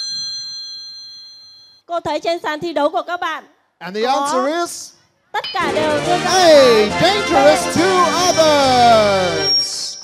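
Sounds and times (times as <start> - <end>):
woman speaking: 5.4 - 6.3
bell chime ringing: 5.4 - 10.0.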